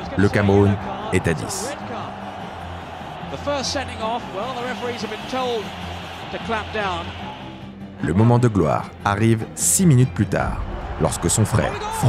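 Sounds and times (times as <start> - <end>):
commentator speaking: 0.0 - 2.0.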